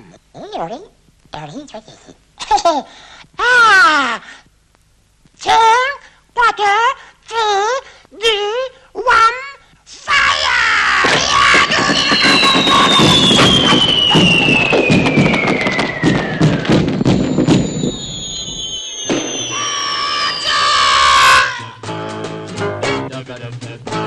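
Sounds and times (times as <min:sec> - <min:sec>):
falling cartoon whistle: 0:11.0 - 0:21.8
plucked guitar theme: 0:21.8 - 0:24.0.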